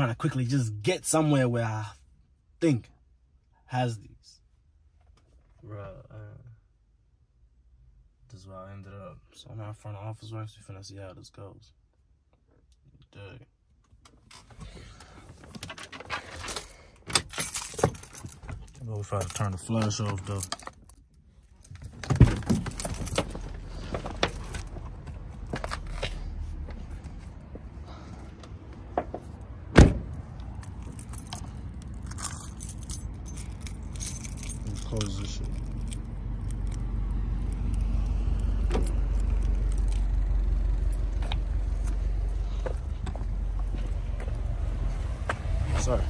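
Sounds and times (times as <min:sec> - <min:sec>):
handling clicks and rattles: 0:15.4 - 0:26.1, 0:30.6 - 0:40.2
keys jangling: 0:15.8 - 0:24.9, 0:30.6 - 0:36.8, 0:38.4 - 0:40.2
low steady rumble: 0:17.6 - 0:46.0
loud thump: 0:29.0 - 0:30.2.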